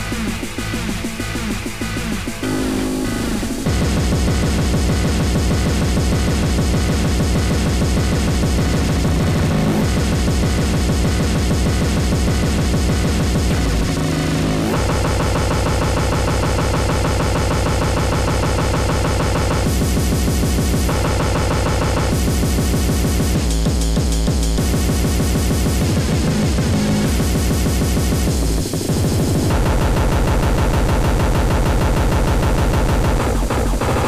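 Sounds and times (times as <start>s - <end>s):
fast harsh electronic kick drums: 0.0s - 34.0s.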